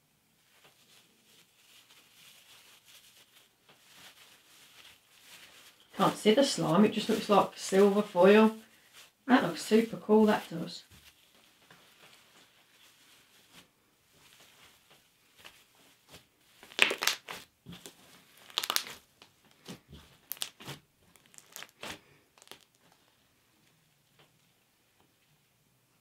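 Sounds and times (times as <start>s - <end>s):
foil flakes crinkling: 0.5s - 23.2s
slime being kneaded by hand: 0.5s - 23.2s.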